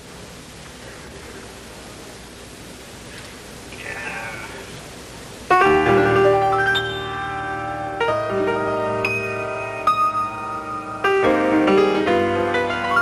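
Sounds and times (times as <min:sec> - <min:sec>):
tape hiss: 0:00.0 - 0:13.0
jazz piano: 0:05.5 - 0:13.0.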